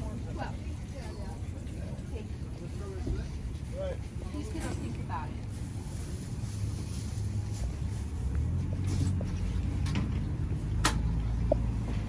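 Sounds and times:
market background rumble: 0.0s - 12.0s.

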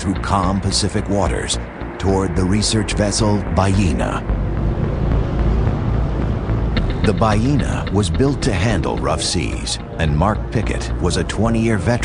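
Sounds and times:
motor boat engine rumbling: 0.0s - 12.0s.

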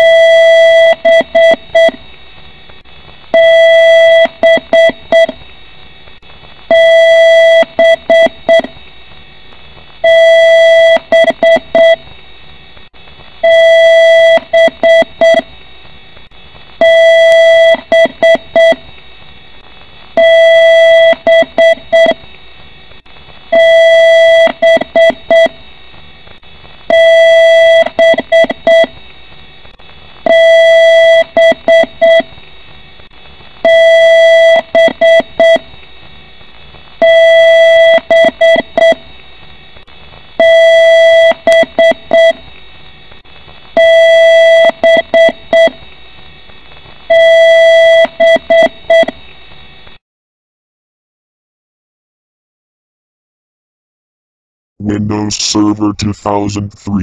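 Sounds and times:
computer speaker beeps: 54.8s - 57.0s.

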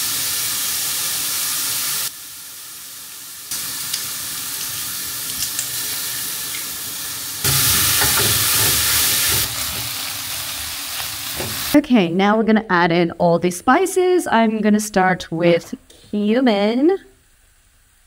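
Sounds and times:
vegetables sizzling in a frying pan: 0.0s - 11.8s.

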